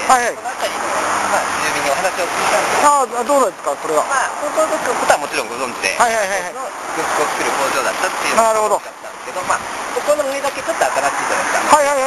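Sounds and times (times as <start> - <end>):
passing road traffic: 0.0 - 12.0
people talking: 0.0 - 12.0.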